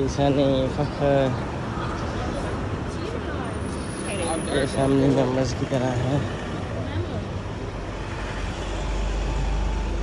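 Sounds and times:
car and bus engines humming: 0:00.0 - 0:10.0
low traffic rumble: 0:00.0 - 0:10.0.

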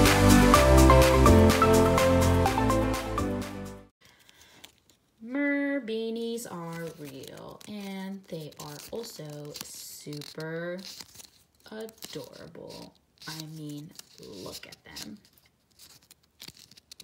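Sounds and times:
paper pages rustling: 0:04.0 - 0:05.2, 0:06.4 - 0:17.0.

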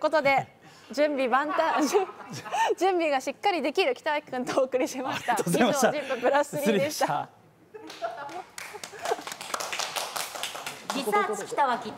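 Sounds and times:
laughter: 0:01.5 - 0:02.6, 0:07.7 - 0:09.3
hands clapping: 0:07.8 - 0:11.4.

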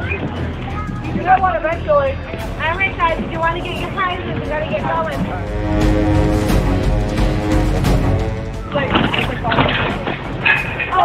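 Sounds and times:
low steady rumble: 0:00.6 - 0:10.1.

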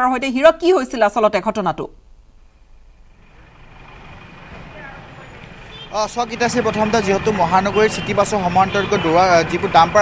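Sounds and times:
faint road traffic: 0:00.0 - 0:10.0.

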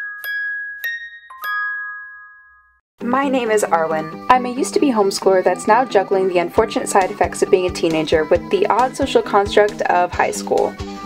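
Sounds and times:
bell-like chime jingle: 0:00.0 - 0:02.8.

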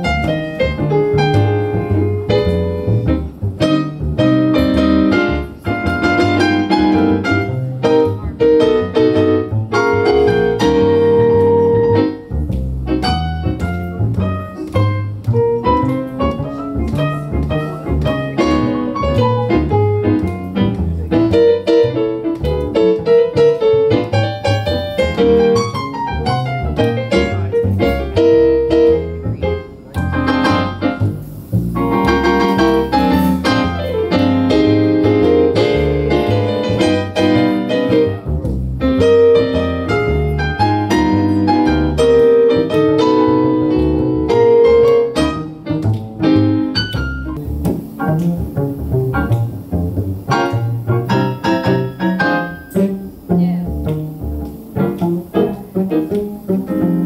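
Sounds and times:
grand piano: 0:00.0 - 0:57.0
upright double bass: 0:00.0 - 0:57.0.

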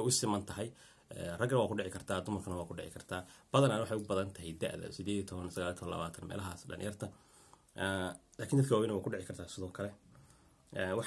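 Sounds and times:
man talking: 0:00.0 - 0:10.0, 0:10.7 - 0:11.0.

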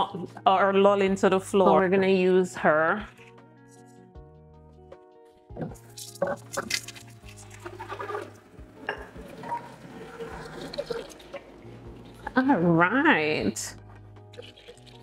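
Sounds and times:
soft background music: 0:00.0 - 0:15.0
tap water running into pitcher: 0:06.2 - 0:12.4, 0:14.2 - 0:15.0
glass clinking at sink: 0:08.8 - 0:09.7.

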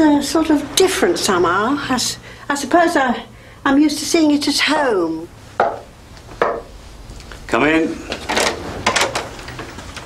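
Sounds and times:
knocking on wooden door: 0:05.6 - 0:06.7.

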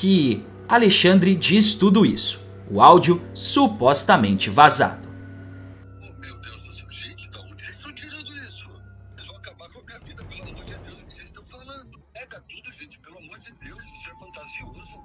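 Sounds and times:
steady low hum: 0:00.0 - 0:09.7
faint background music: 0:00.0 - 0:15.0.

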